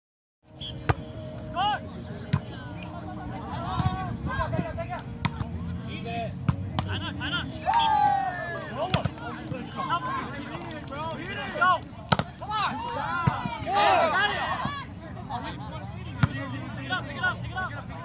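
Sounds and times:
people calling and shouting: 0:00.5 - 0:18.0
long loud shout: 0:07.6 - 0:08.5
volleyball being slapped: 0:12.1 - 0:12.4.

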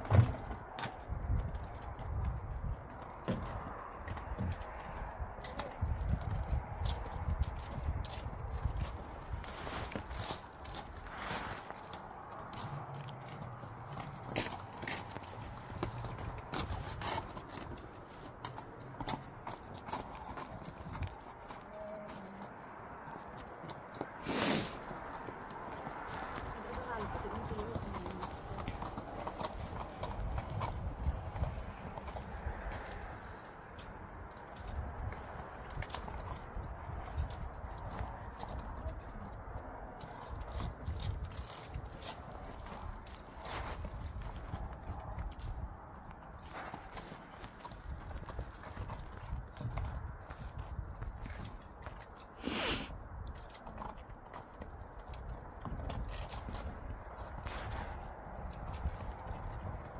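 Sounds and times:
horse hooves clopping on snow: 0:00.0 - 0:59.9.

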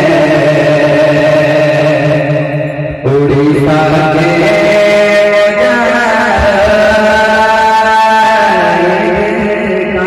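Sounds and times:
man singing through loudspeakers: 0:00.0 - 0:10.0.

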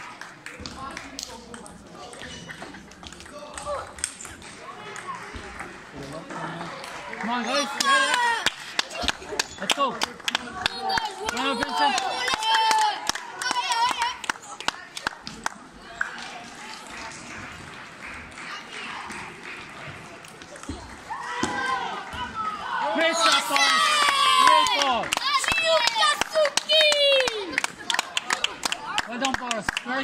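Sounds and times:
chatter and calls of players: 0:00.0 - 0:30.0
table tennis balls clicking: 0:00.6 - 0:05.8
young voices shouting and cheering: 0:07.4 - 0:09.4, 0:10.4 - 0:14.4, 0:21.1 - 0:29.1.

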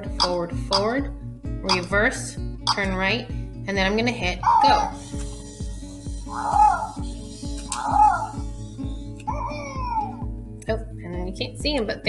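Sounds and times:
cartoon animal calls: 0:04.4 - 0:05.0, 0:06.2 - 0:07.1, 0:07.7 - 0:08.5
robot toy electronic tune: 0:04.7 - 0:09.2.

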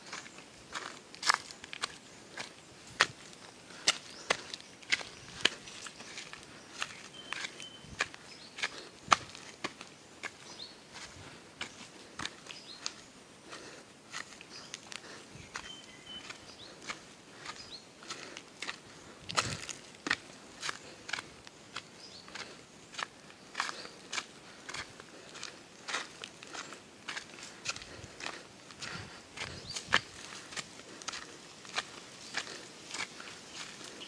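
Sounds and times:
footsteps crunching on leaves: 0:00.0 - 0:34.0.

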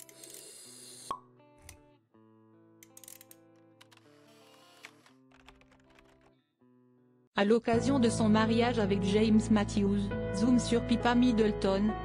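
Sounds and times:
background music: 0:00.9 - 0:12.0.

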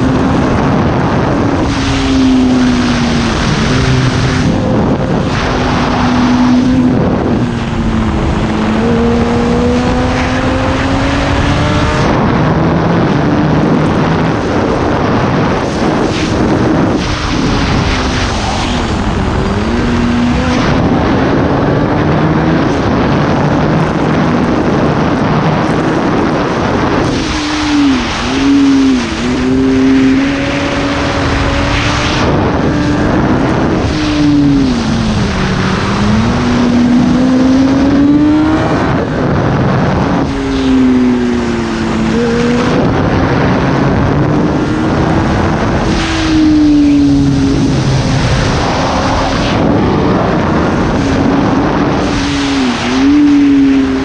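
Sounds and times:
motorcycle engine revving: 0:00.0 - 0:54.0
wind rush: 0:00.0 - 0:54.0.

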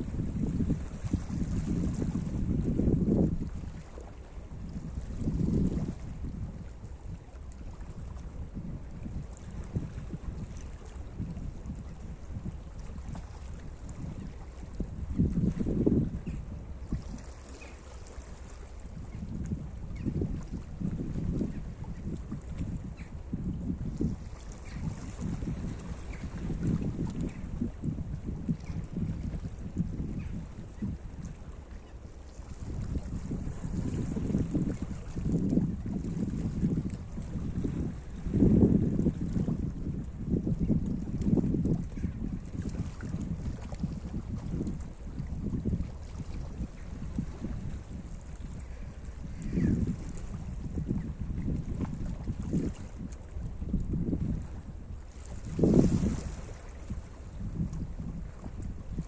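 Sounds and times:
wind rumbling on microphone: 0:00.0 - 0:59.0.

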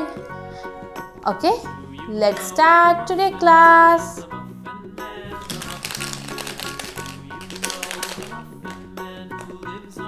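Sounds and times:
background music: 0:00.0 - 0:10.0
plastic toy egg clicking: 0:05.4 - 0:08.8.

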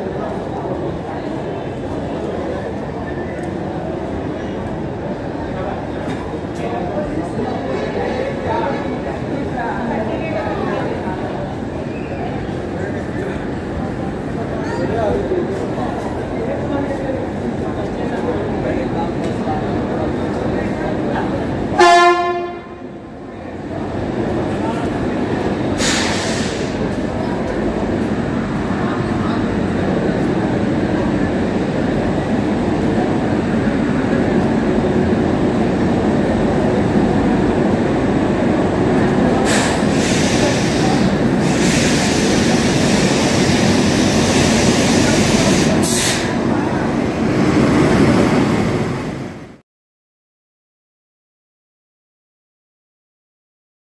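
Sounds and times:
train rumbling past: 0:00.0 - 0:49.6
train horn blast: 0:21.8 - 0:22.9.

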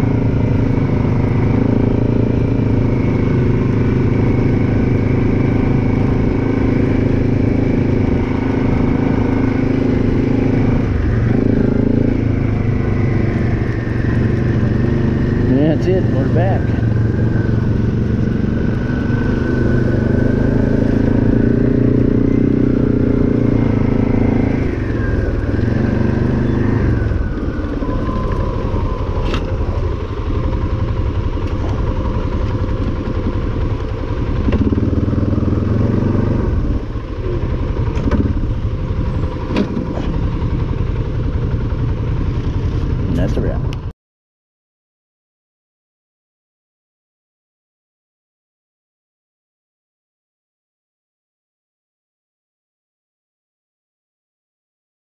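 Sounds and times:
quad engine at low throttle: 0:00.0 - 0:43.9.

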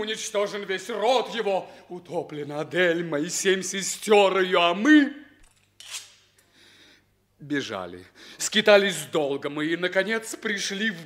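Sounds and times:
man speaking: 0:00.0 - 0:05.3, 0:07.4 - 0:11.0.

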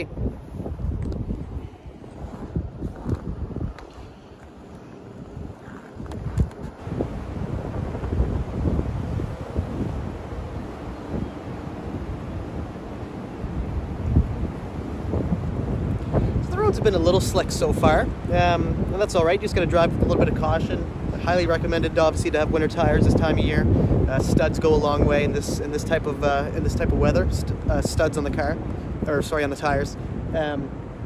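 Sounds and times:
wind buffeting microphone: 0:00.0 - 0:31.0.

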